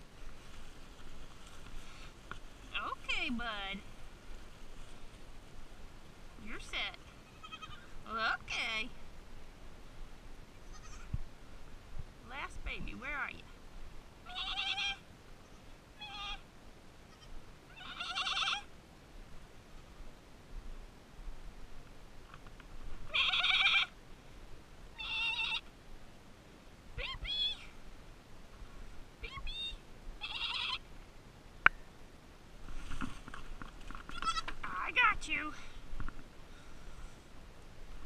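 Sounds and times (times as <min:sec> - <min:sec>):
goat kids bleating: 0:07.0 - 0:07.9, 0:10.6 - 0:11.2, 0:14.3 - 0:15.0, 0:16.0 - 0:16.4, 0:17.1 - 0:18.7, 0:23.1 - 0:23.9, 0:25.0 - 0:25.6, 0:29.2 - 0:30.8, 0:34.1 - 0:34.6.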